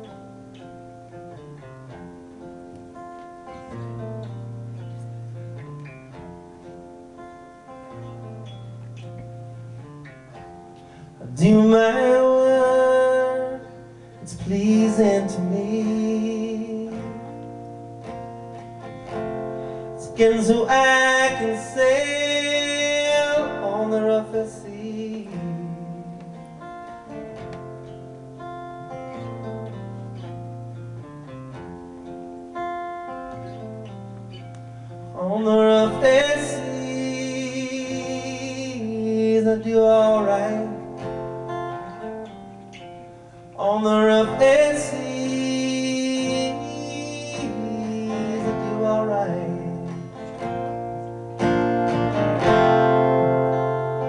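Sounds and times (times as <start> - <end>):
acoustic guitar: 0.0 - 54.0
man singing: 11.1 - 17.6, 20.0 - 26.7, 35.1 - 41.2, 43.6 - 50.5.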